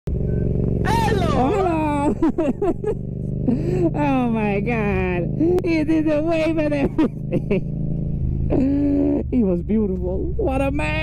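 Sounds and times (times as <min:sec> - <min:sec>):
motorcycle engine running: 0:00.1 - 0:11.0
person exclaiming: 0:00.8 - 0:02.2.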